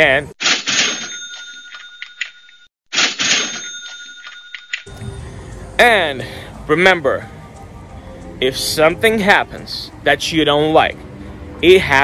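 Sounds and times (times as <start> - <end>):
cash register ka-ching: 0.4 - 4.9.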